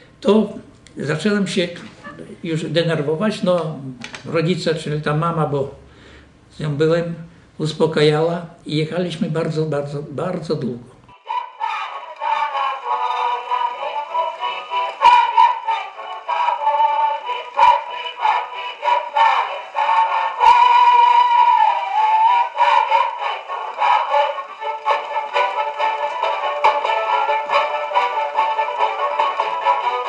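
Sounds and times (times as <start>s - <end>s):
thin gramophone melody: 11.2s - 30.0s.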